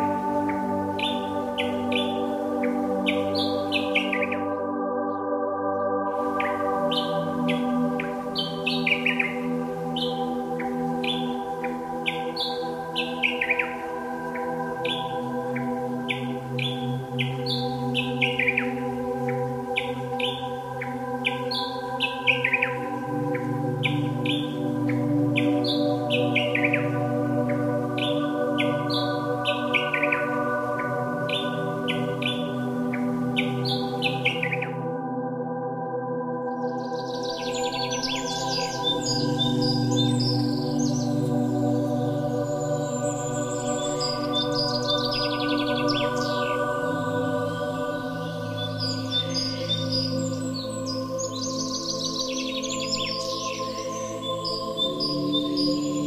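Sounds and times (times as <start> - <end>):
ambient drone chords: 0.0 - 56.0
birdsong chirps: 0.0 - 56.0.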